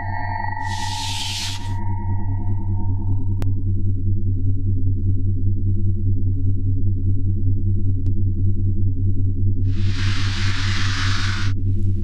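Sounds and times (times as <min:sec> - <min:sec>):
hissing whoosh: 0:09.7 - 0:11.6.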